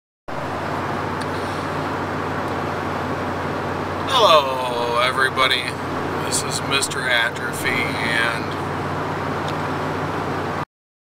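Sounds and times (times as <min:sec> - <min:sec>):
low hum: 0:00.3 - 0:10.6
car road and engine noise: 0:00.3 - 0:10.7.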